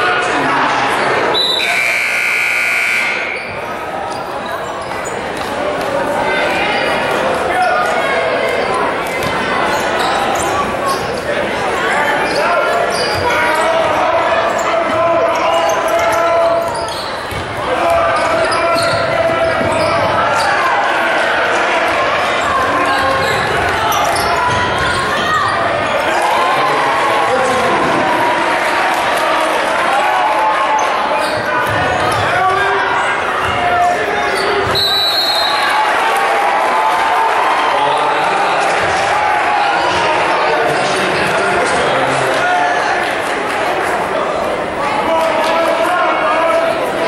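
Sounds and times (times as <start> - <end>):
echoing crowd chatter: 0.0 - 47.0.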